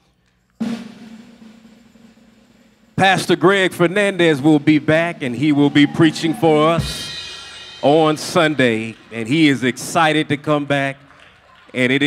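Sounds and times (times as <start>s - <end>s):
snare drum roll: 0.6s - 11.1s.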